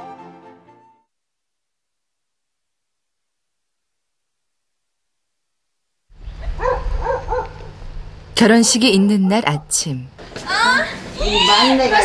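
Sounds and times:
low outdoor rumble: 0:06.1 - 0:12.0
dog barking: 0:06.4 - 0:07.8.

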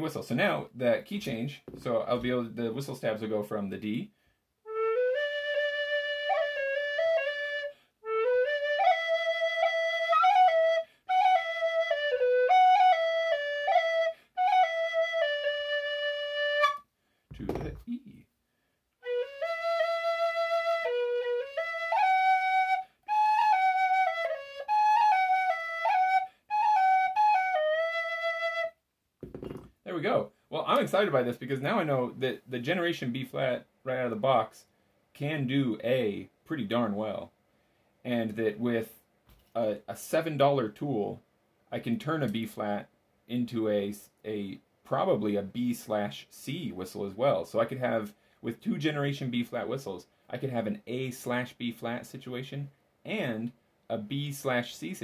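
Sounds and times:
penny whistle melody: 0:04.7 - 0:16.8, 0:19.0 - 0:28.7.

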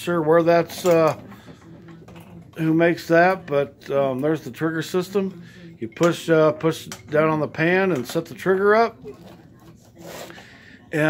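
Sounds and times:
handling rubbing scrape: 0:09.1 - 0:10.5.

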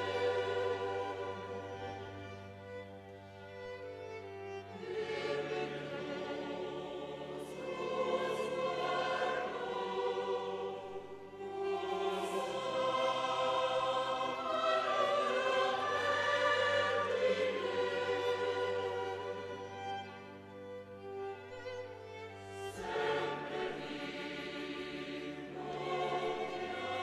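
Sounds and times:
mixed choir singing: 0:00.0 - 0:02.8, 0:04.7 - 0:20.7, 0:22.0 - 0:27.0
string orchestra accompanying: 0:00.0 - 0:27.0.

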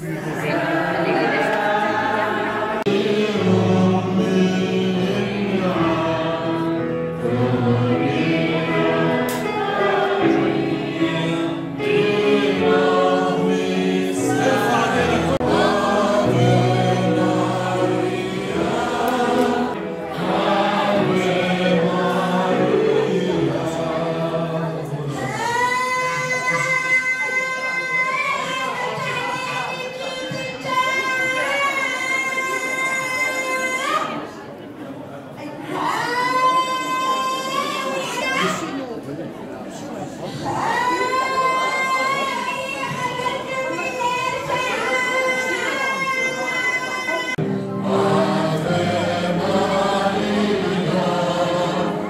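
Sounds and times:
choir singing a hymn: 0:00.0 - 0:34.2, 0:40.3 - 0:52.0.

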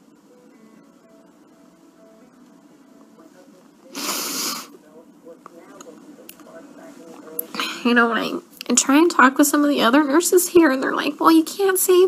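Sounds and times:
woman sniffing: 0:04.0 - 0:04.7.

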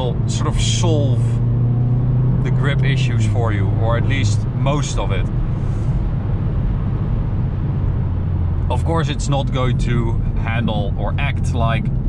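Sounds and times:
car engine drone: 0:00.0 - 0:12.0
road and tyre noise: 0:00.0 - 0:12.0.

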